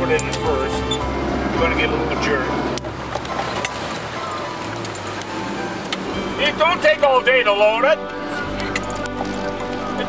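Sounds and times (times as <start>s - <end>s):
car engine humming: 0.0s - 10.0s.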